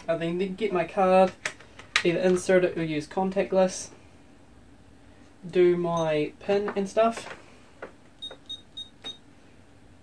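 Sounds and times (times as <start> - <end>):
keypad beeps: 8.2 - 9.2.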